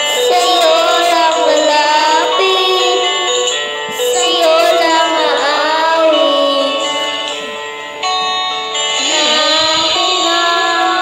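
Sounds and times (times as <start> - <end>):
boy singing into microphone: 0.0 - 7.6, 9.0 - 11.0
karaoke music: 0.0 - 11.0.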